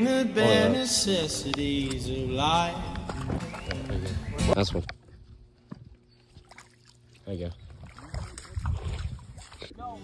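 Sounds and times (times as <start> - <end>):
wind rumble on microphone: 1.6 - 5.5, 7.6 - 10.0.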